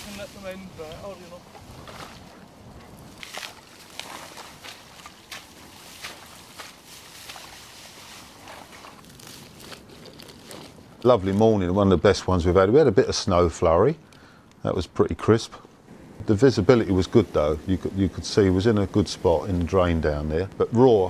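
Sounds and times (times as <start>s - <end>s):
dry reeds rustling and crackling: 0.0s - 14.8s.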